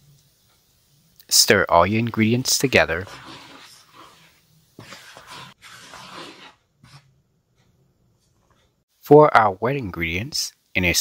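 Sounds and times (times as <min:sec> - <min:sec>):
wooden spoon stirring flour: 0:01.4 - 0:07.2.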